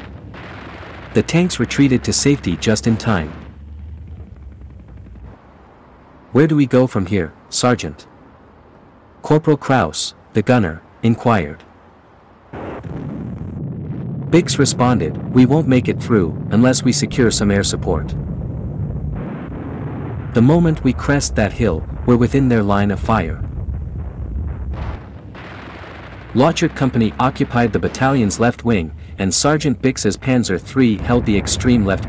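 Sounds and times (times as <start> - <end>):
faint scattered gunfire: 0.0 - 5.7, 19.0 - 32.0
low rumble: 0.0 - 6.6, 12.0 - 32.0
narration voice: 1.1 - 3.6, 6.3 - 8.1, 9.2 - 11.7, 14.3 - 18.2, 20.3 - 23.5, 26.3 - 32.0.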